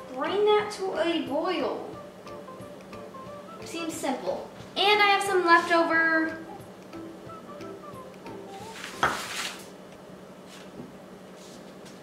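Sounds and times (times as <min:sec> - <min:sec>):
paper rustling: 0:08.7 - 0:09.7.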